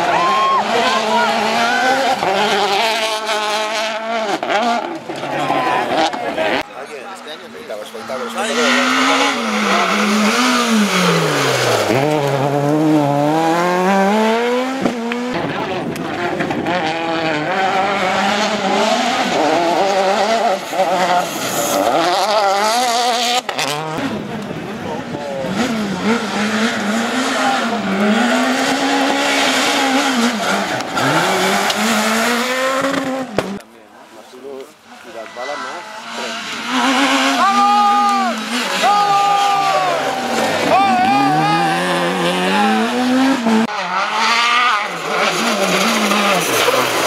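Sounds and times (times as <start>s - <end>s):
rally car engines revving: 0.0s - 47.0s.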